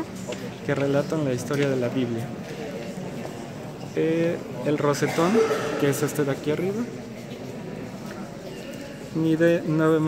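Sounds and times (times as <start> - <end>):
murmur of many voices: 0.0 - 10.0.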